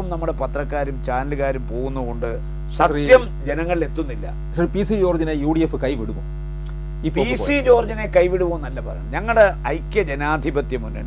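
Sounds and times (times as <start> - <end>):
man speaking: 0.0 - 6.2, 7.0 - 11.0
electrical mains hum: 0.0 - 11.0.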